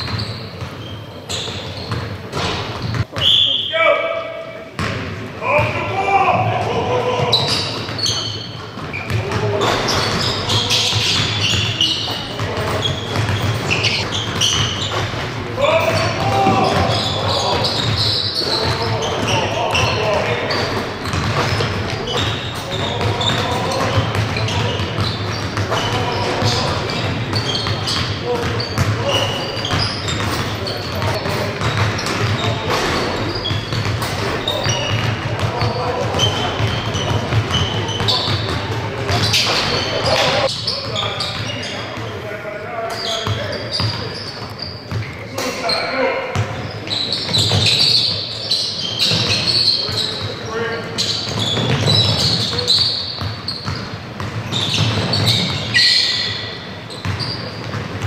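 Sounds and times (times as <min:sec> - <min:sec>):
basketballs bouncing on hardwood: 0:00.0 - 0:03.2, 0:04.8 - 0:42.1, 0:51.3 - 0:55.8, 0:57.0 - 0:58.0
indistinct voices: 0:14.8 - 0:41.8.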